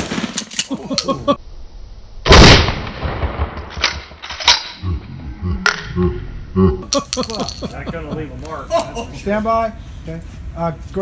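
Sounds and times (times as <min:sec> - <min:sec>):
shotgun blast: 0:02.3 - 0:03.8.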